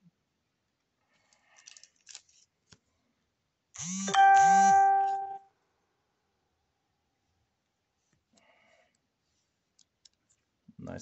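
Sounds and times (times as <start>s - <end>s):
trading cards rustling and clicking: 1.4s - 2.8s
loud single chime: 4.1s - 5.4s.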